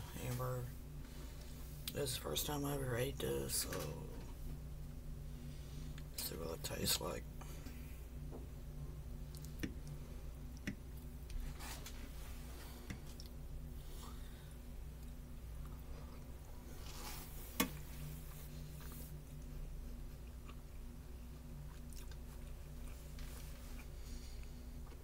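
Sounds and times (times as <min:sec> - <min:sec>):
low hum: 0:00.0 - 0:25.0
person chewing food: 0:17.7 - 0:25.0.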